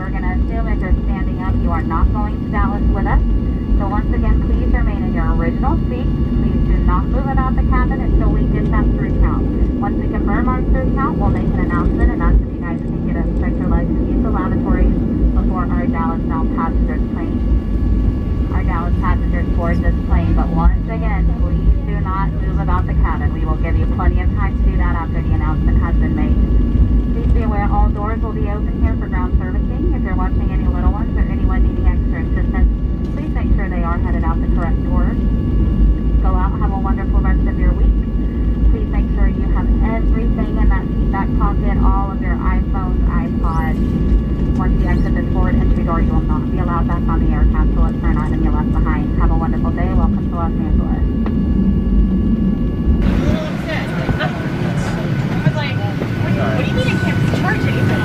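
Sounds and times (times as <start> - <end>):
indistinct voices: 0.0 - 17.4, 18.5 - 26.4, 38.7 - 51.2, 53.0 - 58.0
aircraft cabin engine rumble: 0.0 - 58.0
faint steady whine: 0.0 - 58.0.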